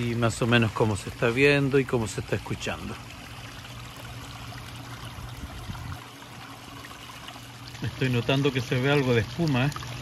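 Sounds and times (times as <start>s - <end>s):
water trickling over rocks: 0.0s - 10.0s.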